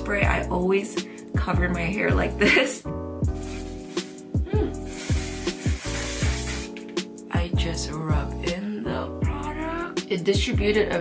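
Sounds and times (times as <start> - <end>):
background music with drum beat: 3.2 - 8.6, 9.2 - 10.8
aerosol spray hissing: 3.3 - 7.0.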